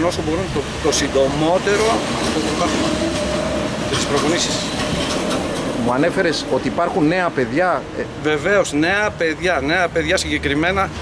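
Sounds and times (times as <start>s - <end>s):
loud rumbling noise: 0.1s - 7.2s.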